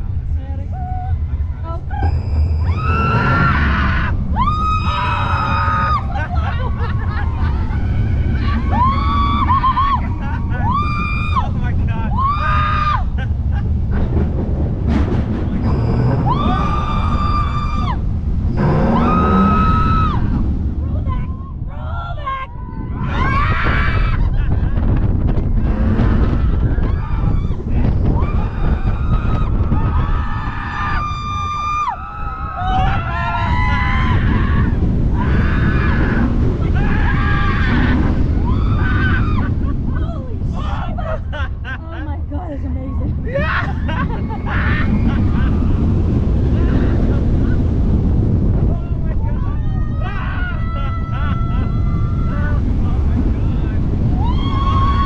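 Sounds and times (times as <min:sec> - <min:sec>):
roller coaster train rumbling: 0:00.0 - 0:55.0
rush of wind: 0:00.0 - 0:55.0
riders screaming: 0:00.8 - 0:13.3, 0:15.6 - 0:41.4, 0:43.3 - 0:55.0.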